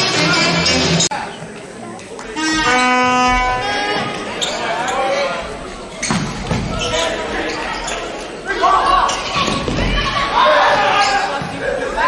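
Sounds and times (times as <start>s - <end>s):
horn-like held note: 2.4s - 4.0s.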